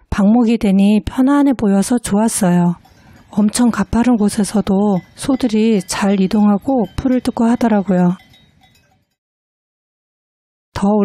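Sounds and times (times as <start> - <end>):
person narrating: 0.0 - 8.2, 10.8 - 11.0
faint cowbells ringing: 2.4 - 9.2.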